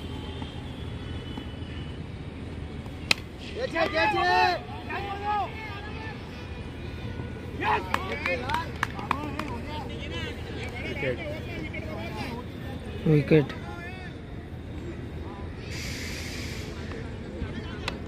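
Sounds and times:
players and spectators calling out: 3.4s - 15.6s.

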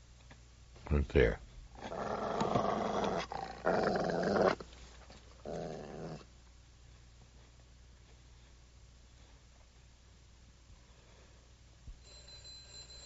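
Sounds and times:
dog growling: 1.8s - 4.6s, 5.4s - 6.3s.

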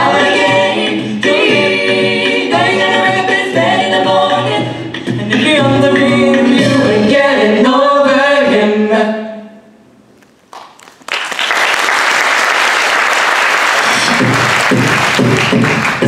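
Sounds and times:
a cappella group singing harmony: 0.0s - 9.7s.

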